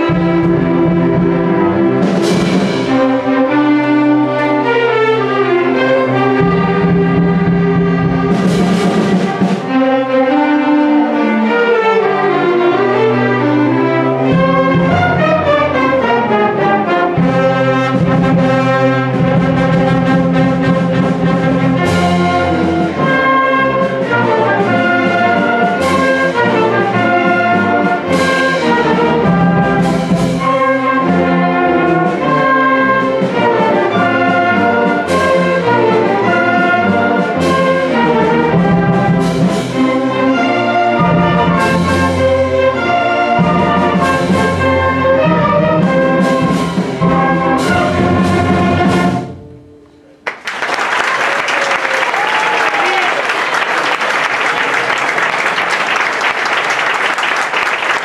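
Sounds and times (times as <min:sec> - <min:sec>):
orchestra playing: 0:00.0 - 0:58.0
audience applause: 0:50.2 - 0:58.0.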